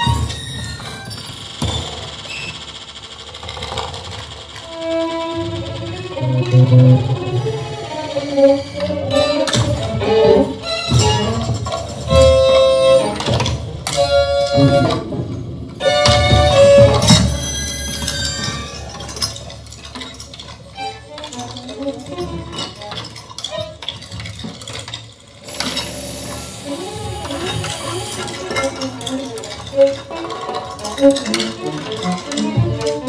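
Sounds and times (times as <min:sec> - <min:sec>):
bowed violin notes: 0:05.2 - 0:15.2, 0:15.8 - 0:19.0.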